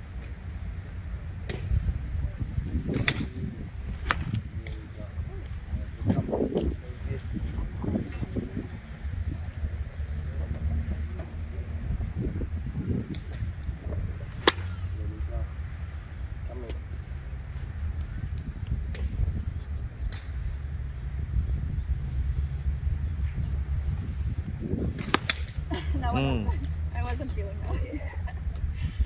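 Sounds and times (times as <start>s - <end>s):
steady low rumble: 0.0s - 10.0s
golf club striking ball: 2.9s - 4.5s, 14.3s - 15.0s, 25.0s - 25.7s.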